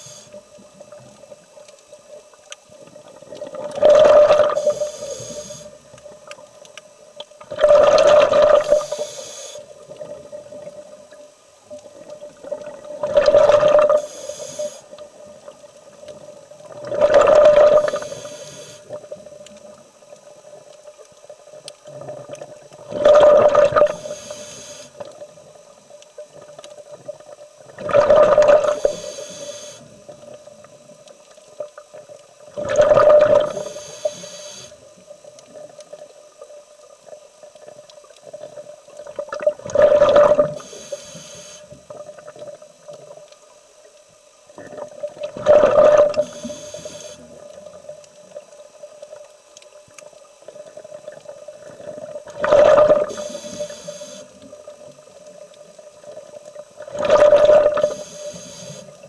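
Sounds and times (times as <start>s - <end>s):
diver breathing through regulator: 3.9s - 5.8s, 7.7s - 9.7s, 13.2s - 14.9s, 17.2s - 18.9s, 23.2s - 25.0s, 28.4s - 29.9s, 32.9s - 34.8s, 40.1s - 41.7s, 45.7s - 47.3s, 52.5s - 54.3s, 57.1s - 59.0s.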